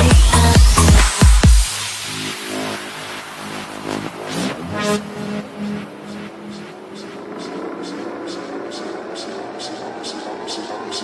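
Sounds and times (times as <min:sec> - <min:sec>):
synth tone rising in pitch: 0:01.6 - 0:11.0
hi-hat ticks: 0:06.0 - 0:11.0.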